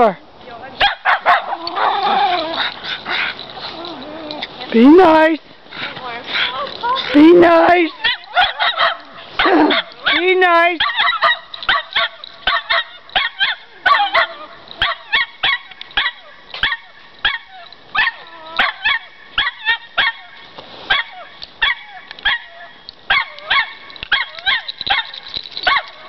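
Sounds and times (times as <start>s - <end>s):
dogs yapping: 0.8s - 5.2s, 5.8s - 26.0s.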